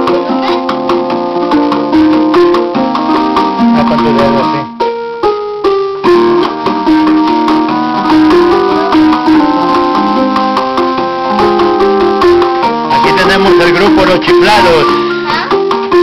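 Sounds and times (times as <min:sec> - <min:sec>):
electronic keyboard playing a tune: 0:00.0 - 0:16.0.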